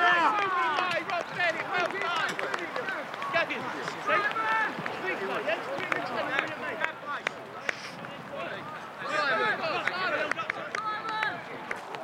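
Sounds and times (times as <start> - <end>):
men shouting and calling: 0.0 - 11.9.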